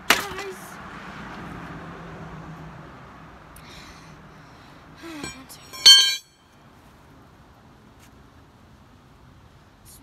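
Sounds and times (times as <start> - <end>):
sharp clink of hard object: 5.2 - 6.4.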